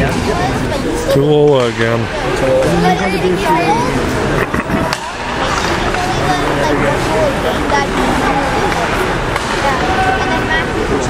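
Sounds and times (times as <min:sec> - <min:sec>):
spectator chatter: 0:00.0 - 0:11.0
stick and puck clacks: 0:04.4 - 0:06.2, 0:07.6 - 0:09.9.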